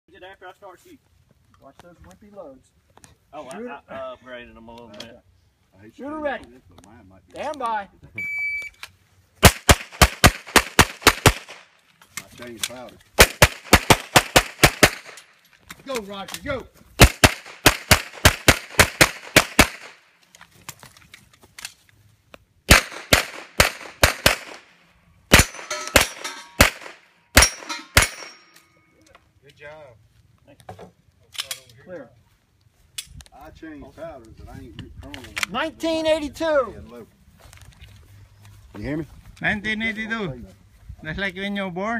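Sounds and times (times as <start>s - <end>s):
shot timer beep: 8.2s - 8.8s
pistol shots: 9.4s - 11.7s, 13.2s - 15.2s, 17.0s - 20.0s, 22.7s - 24.7s, 25.3s - 28.5s.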